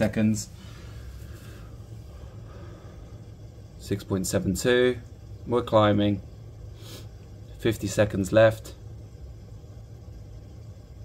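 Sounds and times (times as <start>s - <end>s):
faint hiss: 0.0s - 11.0s
low equipment hum: 0.0s - 11.0s.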